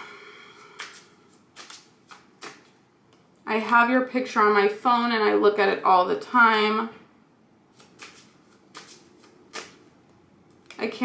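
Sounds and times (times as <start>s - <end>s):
cards being shuffled: 0.6s - 2.8s, 7.7s - 9.9s.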